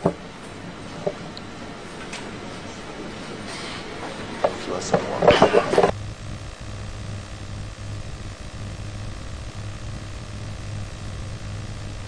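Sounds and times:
low hum: 0:05.2 - 0:12.0.

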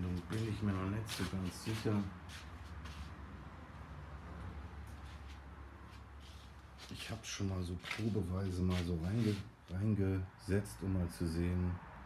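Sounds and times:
faint handling rustles and knocks: 0:00.0 - 0:03.2, 0:04.8 - 0:09.8.

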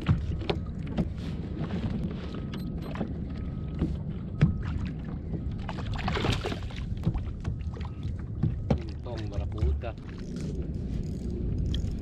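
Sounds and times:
wind and water rumble: 0:00.0 - 0:12.0.

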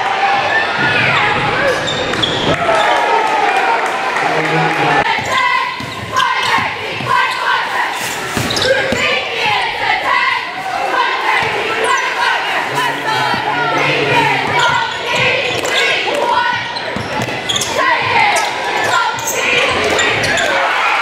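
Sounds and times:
players and crowd shouting: 0:00.0 - 0:21.0
basketball bouncing on gym floor: 0:05.1 - 0:07.3.

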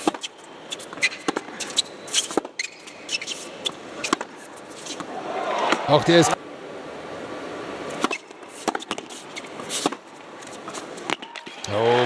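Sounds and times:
racket striking tennis ball: 0:00.0 - 0:06.0, 0:07.9 - 0:11.6
tennis ball bouncing: 0:00.0 - 0:06.0, 0:07.9 - 0:11.7
low hush of arena crowd: 0:03.4 - 0:09.6.

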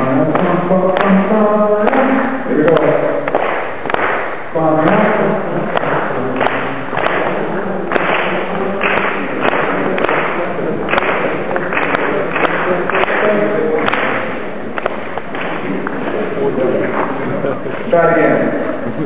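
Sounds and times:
group clapping a rhythm: 0:00.0 - 0:18.4.

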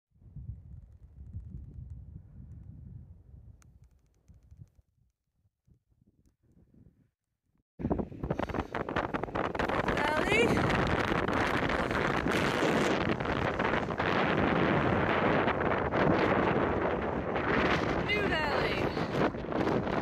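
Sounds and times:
strong wind on microphone: 0:00.2 - 0:04.8, 0:07.8 - 0:20.0.

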